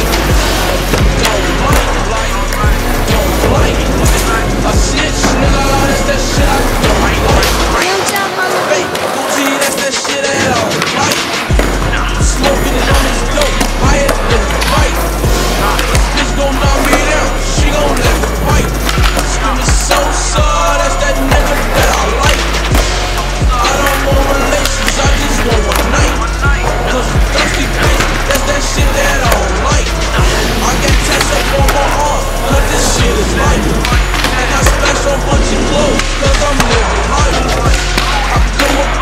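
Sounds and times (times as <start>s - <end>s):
hip-hop music with booming bass: 0.0s - 39.0s
skateboard wheels rolling on concrete: 0.0s - 39.0s.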